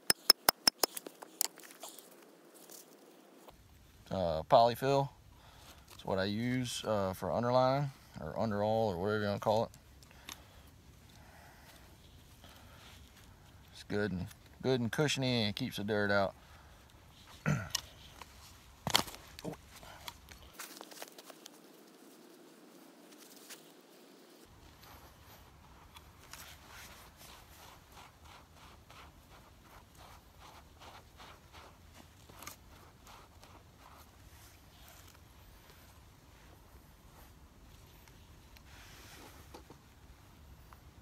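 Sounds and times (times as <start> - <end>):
trap clicking: 0.0 - 1.0
hand scraping sandy dirt: 0.0 - 3.6, 17.0 - 40.0.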